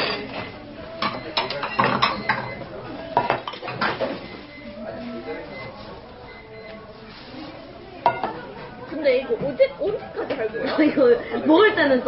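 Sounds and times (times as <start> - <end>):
dishes clinking and clattering: 0.0 - 4.5, 8.0 - 8.6.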